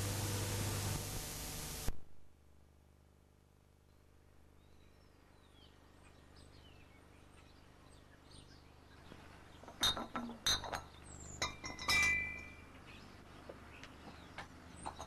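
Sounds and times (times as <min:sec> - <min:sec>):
glass bottles clinking: 0:09.7 - 0:12.7.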